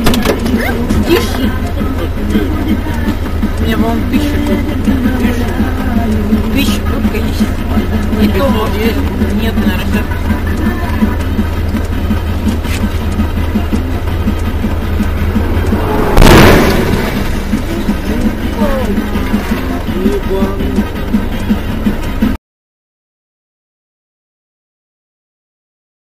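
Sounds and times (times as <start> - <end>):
car engine and road noise: 0.0 - 22.4
music playing: 0.0 - 22.4
car crash: 14.8 - 19.4.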